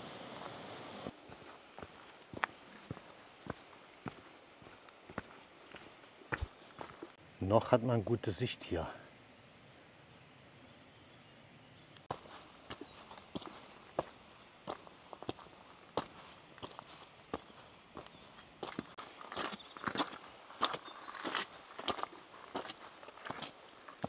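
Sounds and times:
footsteps on a mountain path: 0.0s - 7.2s, 12.0s - 24.0s.

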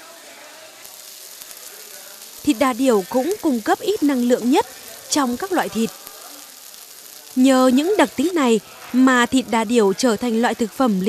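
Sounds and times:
crackling pops: 0.0s - 11.0s
meat sizzling on hot plate: 0.0s - 11.0s.

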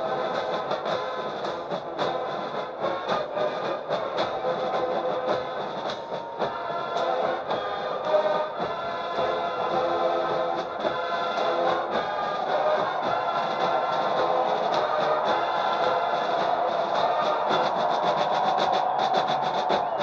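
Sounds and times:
military marching band: 0.0s - 20.0s.

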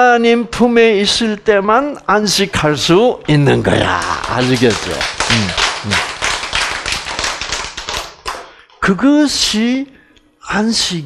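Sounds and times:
group of people clapping: 3.5s - 8.6s.

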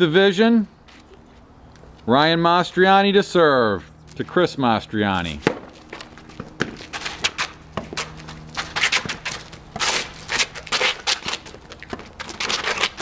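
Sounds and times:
sneakers scuffing on pavement: 0.8s - 2.1s, 3.8s - 13.0s
ball bouncing: 5.4s - 9.9s
racket striking ball: 5.4s - 13.0s.

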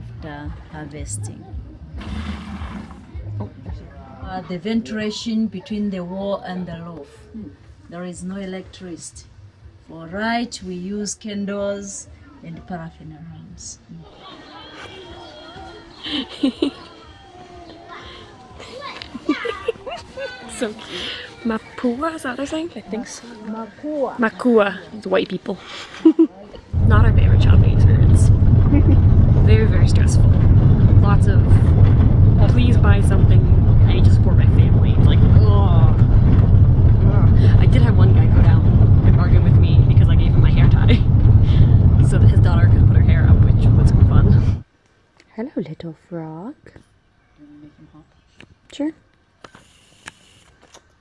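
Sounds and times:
woman talking: 0.0s - 1.5s, 4.3s - 7.1s, 9.9s - 14.0s, 20.4s - 23.4s, 26.8s - 36.2s, 36.9s - 44.6s, 45.3s - 46.8s
young children calling and chattering: 3.1s - 8.0s, 13.8s - 36.2s
van engine and road rumble: 26.7s - 44.7s.

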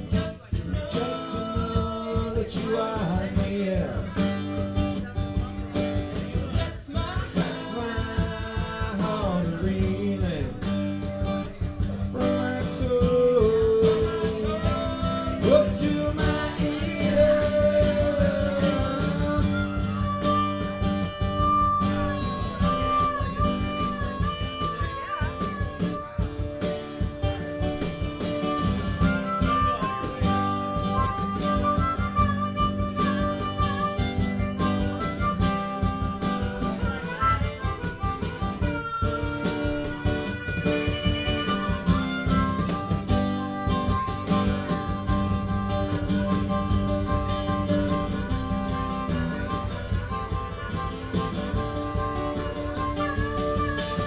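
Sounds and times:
guitar: 0.0s - 54.0s
steady drum beat: 0.0s - 54.0s
harmonica solo: 12.4s - 54.0s.

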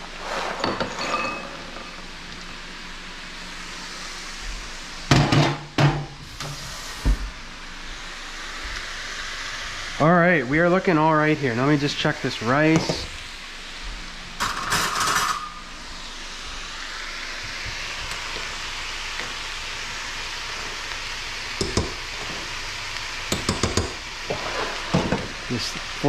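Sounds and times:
stir fry sizzling in a pan: 0.0s - 13.8s, 14.4s - 26.0s.

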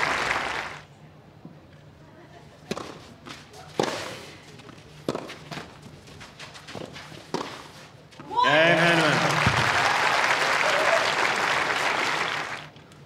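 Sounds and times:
tennis ball hit by rackets: 2.7s - 4.3s, 5.0s - 5.7s, 6.6s - 7.7s.

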